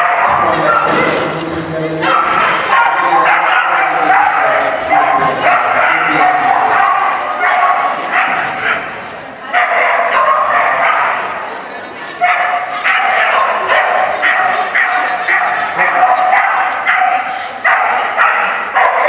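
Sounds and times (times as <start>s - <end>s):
dog barking rapidly: 0.0s - 1.0s, 2.0s - 8.9s, 9.6s - 11.3s, 12.2s - 19.0s.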